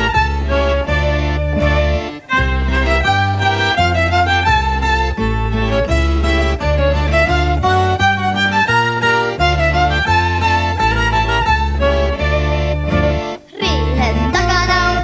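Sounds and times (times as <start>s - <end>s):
bass line: 0.0s - 15.0s
fiddle melody: 0.0s - 15.0s
guitar: 0.0s - 15.0s.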